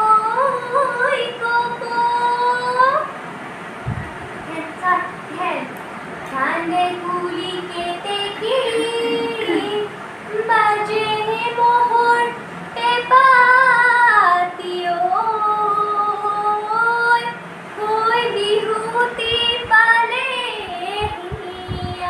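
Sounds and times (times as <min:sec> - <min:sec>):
young woman singing: 0:00.0 - 0:03.2, 0:06.3 - 0:22.0.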